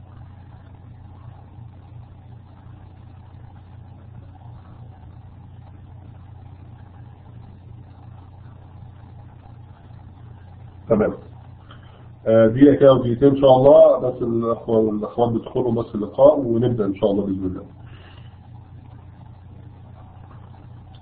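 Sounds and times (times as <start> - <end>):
low hum with faint hiss: 0.0 - 21.0.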